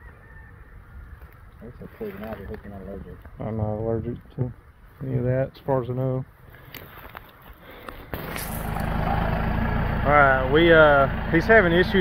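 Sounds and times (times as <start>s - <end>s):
diesel engine idling: 8.2s - 12.0s.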